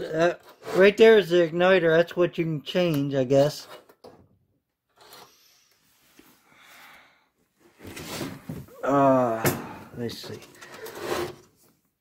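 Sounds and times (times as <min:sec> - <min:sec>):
faint handling and rubbing: 0:04.9 - 0:06.8, 0:10.0 - 0:12.0.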